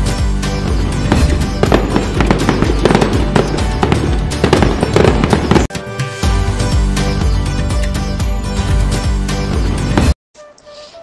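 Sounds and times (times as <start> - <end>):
festive background music: 0.0 - 10.2
firework bangs: 1.0 - 5.7.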